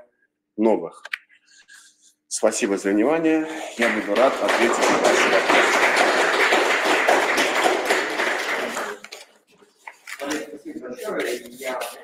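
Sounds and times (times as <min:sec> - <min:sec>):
audience applause: 0:03.7 - 0:09.1.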